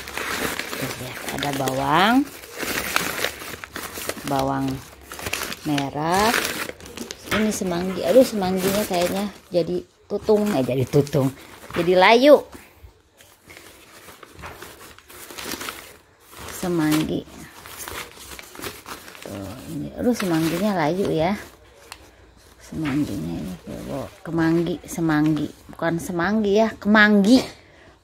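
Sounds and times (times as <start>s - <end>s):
paper and plastic crinkling: 0.0s - 25.9s.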